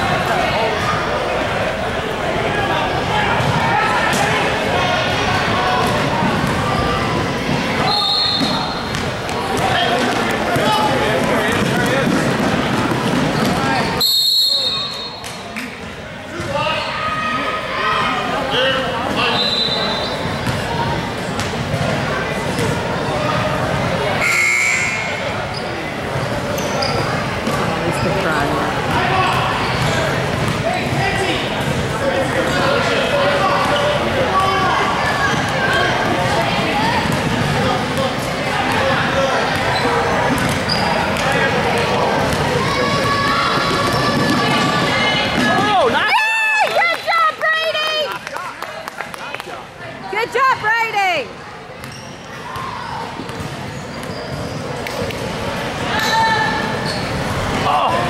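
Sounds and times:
voices echoing: 0.0 - 58.0.

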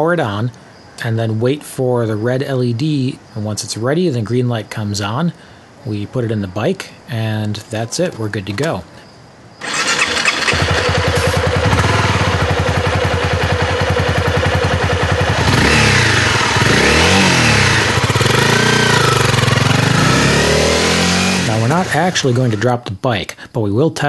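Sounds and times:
motorcycle engine starting and revving: 9.6 - 22.7.

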